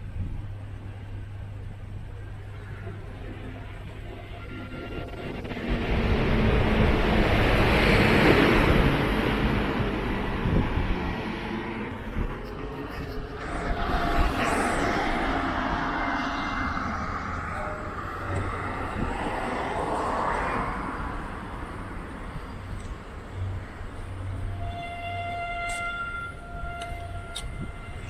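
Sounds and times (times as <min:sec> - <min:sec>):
outdoor traffic noise: 0:00.0 - 0:28.0.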